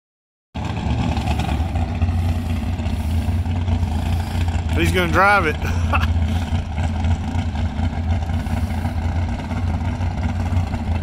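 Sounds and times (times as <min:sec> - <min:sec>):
race car engine idling: 0:00.6 - 0:11.0.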